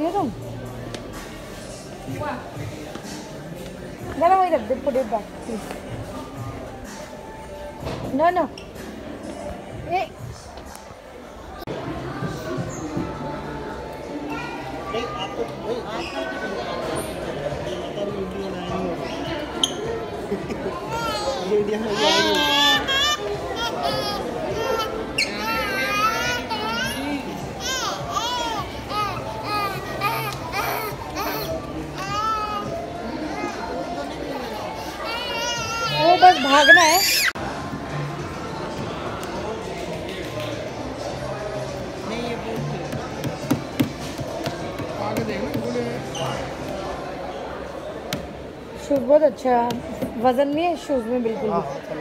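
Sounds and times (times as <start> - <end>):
low background voices: 0.0 - 52.0.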